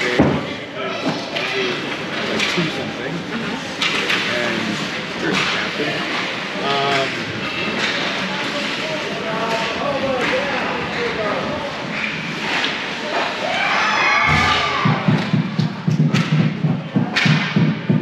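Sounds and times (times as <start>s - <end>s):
hockey sticks and puck clacking: 1.0s - 2.7s, 3.7s - 13.6s, 14.3s - 18.0s.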